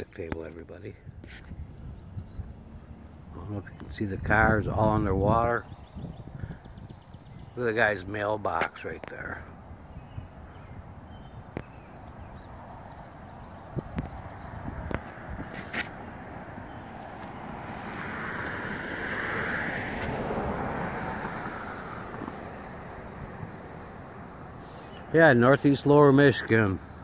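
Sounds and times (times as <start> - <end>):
outdoor background noise: 0.0 - 27.0
car tyre hiss passing: 14.6 - 25.1.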